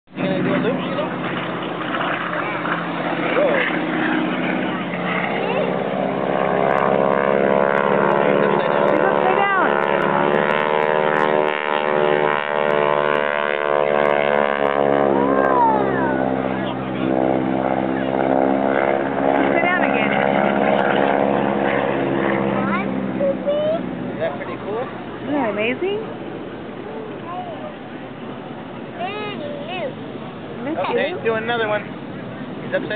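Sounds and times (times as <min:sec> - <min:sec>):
airplane engine overhead: 0:00.1 - 0:32.9.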